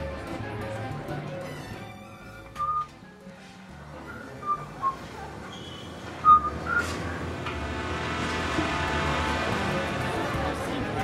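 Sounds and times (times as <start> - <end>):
whistled notes: 2.6 - 3.0, 4.0 - 6.9.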